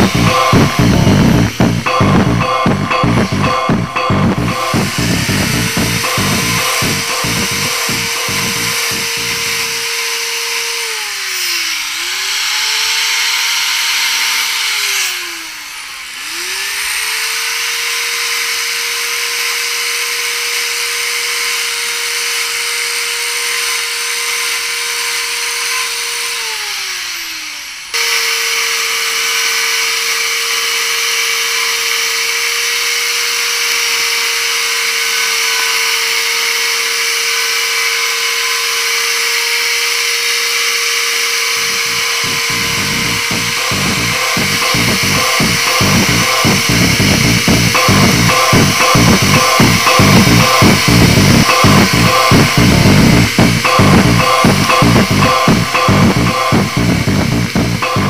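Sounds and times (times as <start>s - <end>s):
chainsaw running at high rev: 0.0s - 58.0s.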